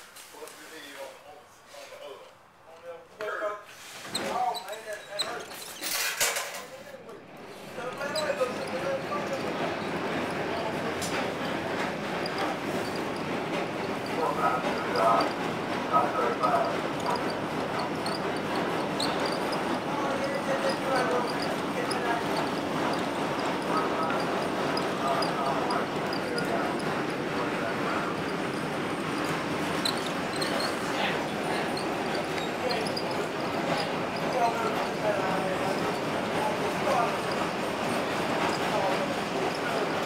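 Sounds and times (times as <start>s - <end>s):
faint voices: 4.1s - 40.0s
streetcar running on track: 7.1s - 40.0s.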